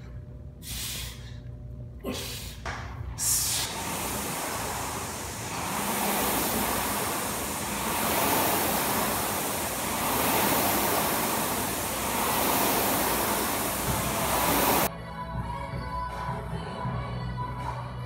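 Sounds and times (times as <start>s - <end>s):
rowing machine flywheel whooshing: 3.2s - 14.9s.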